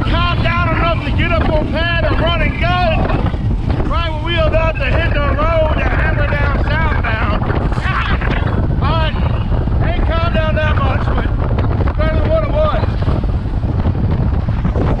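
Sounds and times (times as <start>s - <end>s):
man talking: 0.0s - 3.2s, 3.8s - 13.0s
boat engine at speed: 0.0s - 15.0s
wind rushing over microphone: 0.0s - 15.0s.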